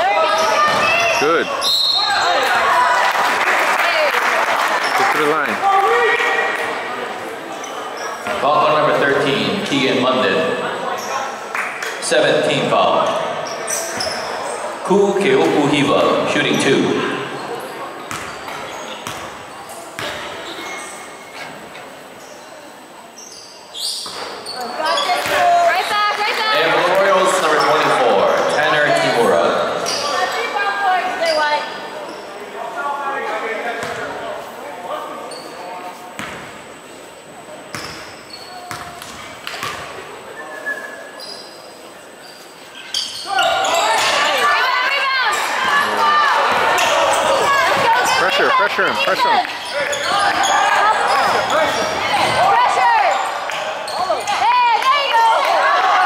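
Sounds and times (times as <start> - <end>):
spectators' voices and shouts: 0.0 - 23.2, 24.3 - 37.8, 43.0 - 56.0.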